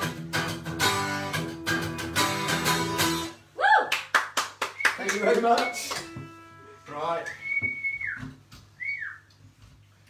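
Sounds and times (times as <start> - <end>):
high whistle: 4.8 - 6.6, 7.2 - 9.3
guitars knocking: 5.4 - 6.5.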